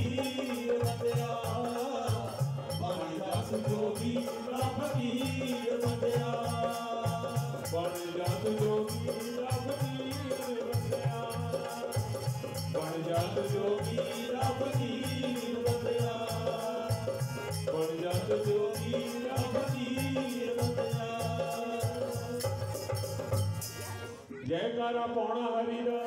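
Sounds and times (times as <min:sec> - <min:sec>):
dholak drum beating: 0:00.0 - 0:24.2
harmonium melody: 0:00.0 - 0:24.4.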